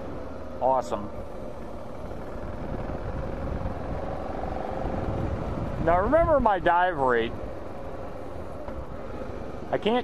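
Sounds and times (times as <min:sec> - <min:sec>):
motorcycle engine cruising: 0:00.0 - 0:10.0
wind rush on microphone: 0:02.3 - 0:07.5.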